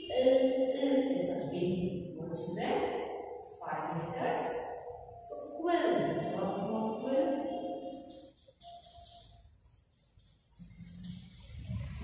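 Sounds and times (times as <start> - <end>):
chalk scratching on blackboard: 6.9 - 12.0.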